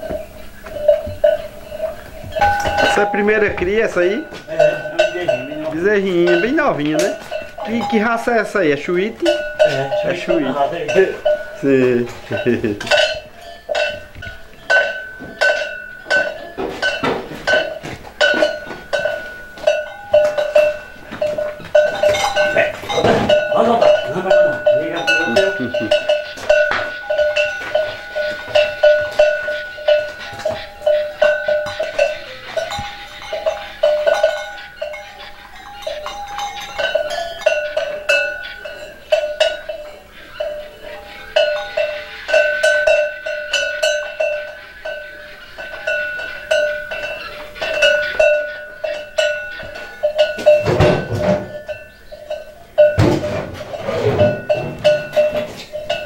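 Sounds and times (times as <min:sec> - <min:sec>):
cowbell clanking: 0:00.0 - 0:56.0.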